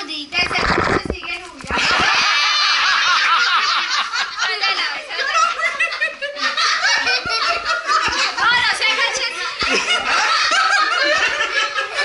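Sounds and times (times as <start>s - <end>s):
people laughing: 1.7s - 12.0s.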